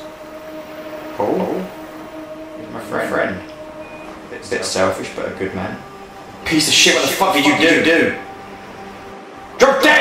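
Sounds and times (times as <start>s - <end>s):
steady low hum: 0.0s - 10.0s
man speaking: 4.3s - 8.2s.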